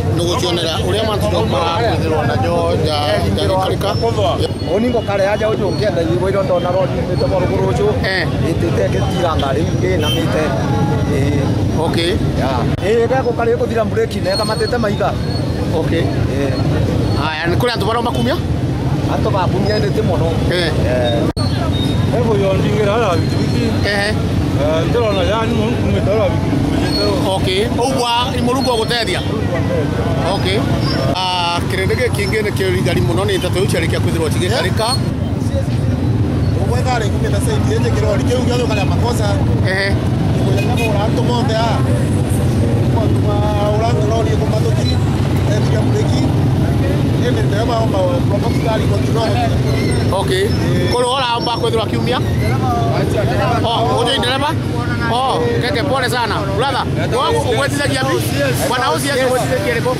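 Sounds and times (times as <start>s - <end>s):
man talking: 0.0s - 21.4s, 42.7s - 59.9s.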